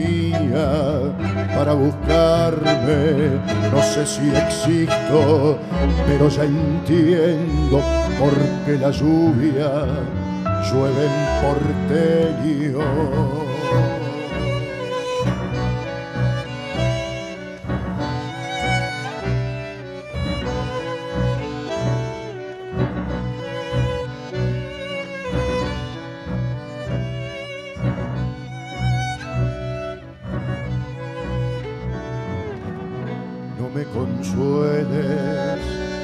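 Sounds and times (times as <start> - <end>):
bandoneon: 0.0 - 36.0
double bass: 0.0 - 36.0
piano: 0.0 - 36.0
violin with vibrato: 0.0 - 36.0.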